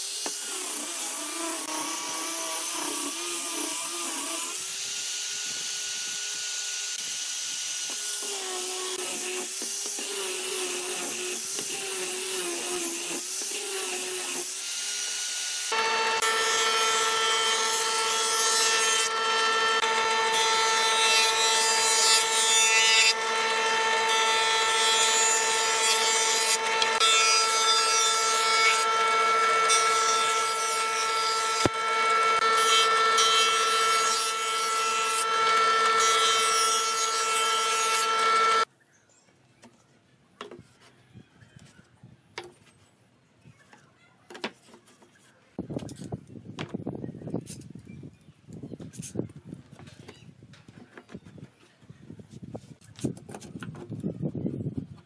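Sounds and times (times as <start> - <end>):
angle grinder sanding wood: 0.0 - 38.7
jointer cutting boards: 0.0 - 38.7
jointer motor whining: 15.7 - 38.7.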